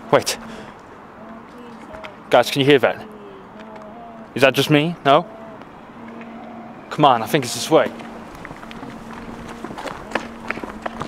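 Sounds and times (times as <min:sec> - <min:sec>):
faint steady hum: 0:00.0 - 0:11.0
footsteps running on tarmac: 0:07.4 - 0:11.0.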